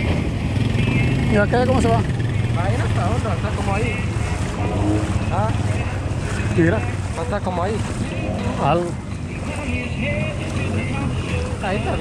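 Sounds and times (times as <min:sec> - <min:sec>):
quad engine running: 0:00.0 - 0:12.0
water splashing: 0:00.0 - 0:12.0
wind rushing over microphone: 0:04.0 - 0:09.4.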